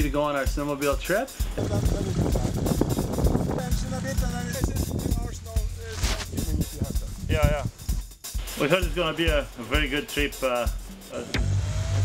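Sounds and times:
background music: 0:00.0 - 0:12.0
snowmobile engines idling: 0:03.5 - 0:07.2.

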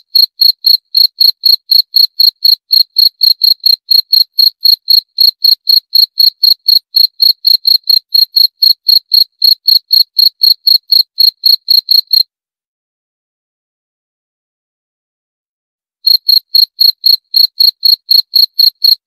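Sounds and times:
cricket chirping: 0:00.1 - 0:12.2, 0:16.1 - 0:19.0.

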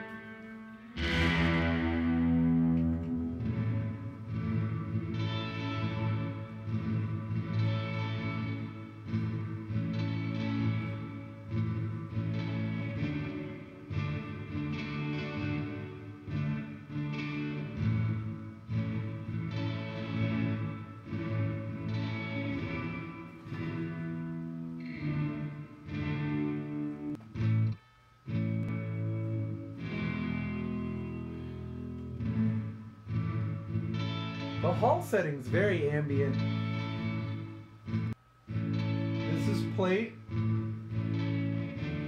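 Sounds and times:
guitar with ambient reverb: 0:00.0 - 0:42.0.

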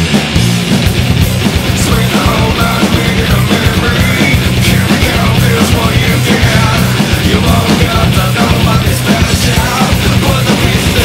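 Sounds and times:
loud metal rock song: 0:00.0 - 0:11.0.

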